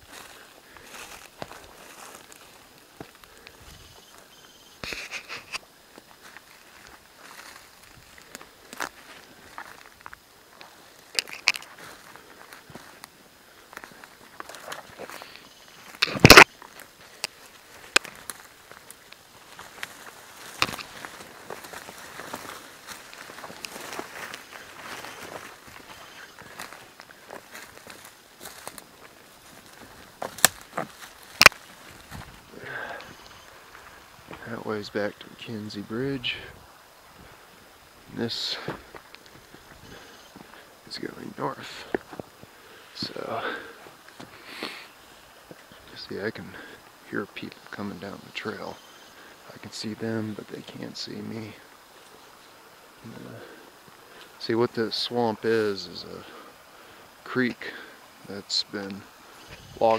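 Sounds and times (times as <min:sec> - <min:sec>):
footsteps through undergrowth: 0:00.0 - 0:59.9
leaves rustling: 0:00.0 - 0:59.9
twigs snapping: 0:04.8 - 0:32.3, 0:38.9 - 0:39.6.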